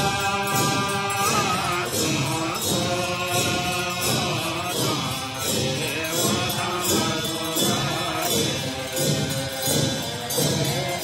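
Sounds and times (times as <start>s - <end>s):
hand drums rattling: 0.0s - 11.0s
voices chanting in unison: 0.0s - 11.0s.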